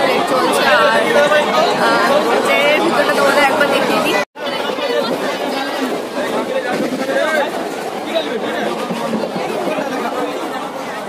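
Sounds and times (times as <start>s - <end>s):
passengers chattering: 0.0s - 11.0s.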